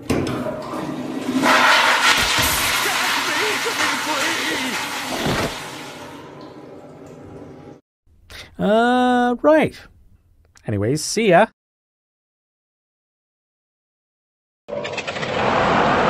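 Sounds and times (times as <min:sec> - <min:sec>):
toilet flushing: 0:00.0 - 0:07.8.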